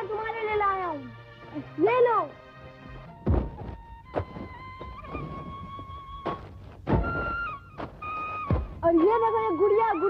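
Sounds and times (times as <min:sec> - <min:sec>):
dull thud: 0:03.2 - 0:09.0.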